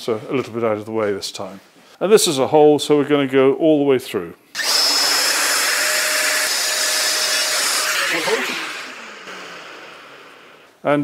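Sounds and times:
router running and winding down: 4.6s - 10.7s.

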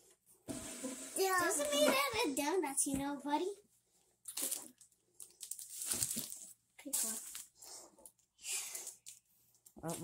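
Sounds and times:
child's voice: 1.2s - 3.6s
plastic wrappers crinkling: 4.2s - 10.0s.

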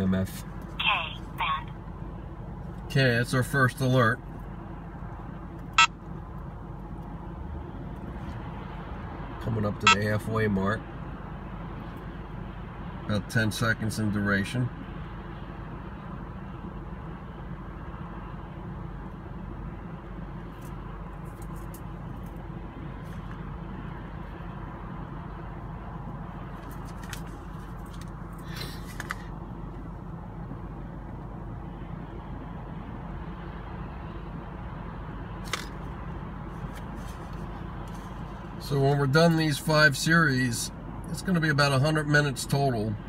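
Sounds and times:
car road and engine drone: 0.0s - 43.0s.

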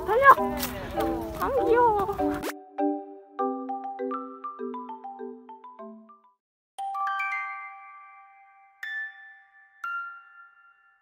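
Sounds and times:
bell-like tune: 2.7s - 11.0s.

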